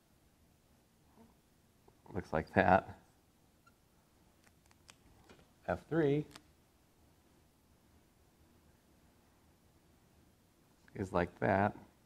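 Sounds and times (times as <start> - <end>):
man speaking: 2.1 - 3.0, 5.6 - 6.4, 10.9 - 11.9.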